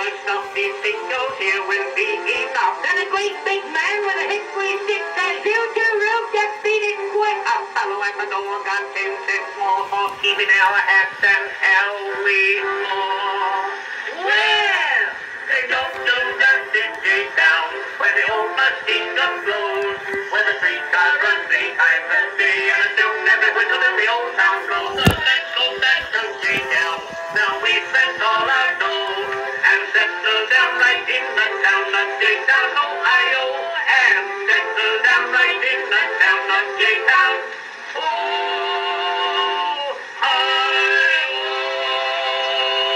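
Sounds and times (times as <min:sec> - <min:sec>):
old phonograph comic song: 0:00.0 - 0:42.9.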